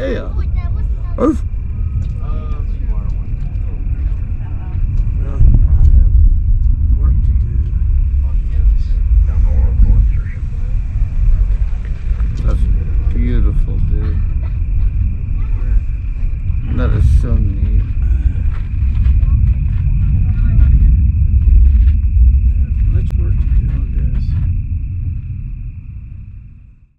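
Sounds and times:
faint voices talking: 0.0s - 21.0s
loud low rumble: 0.0s - 26.9s.

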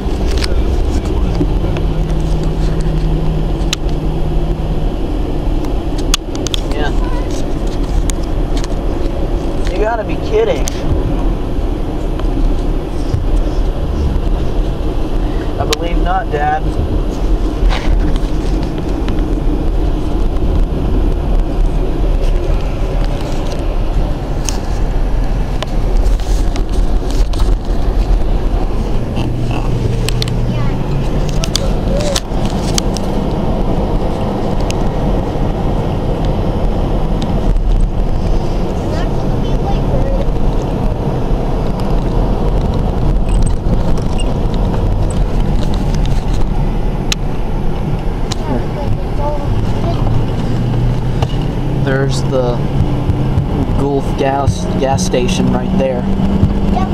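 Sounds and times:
car road and engine rumble: 0.0s - 56.9s.

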